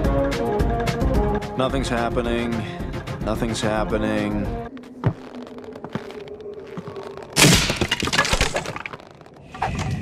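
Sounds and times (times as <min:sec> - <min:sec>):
wooden planks cracking: 0:05.2 - 0:09.9.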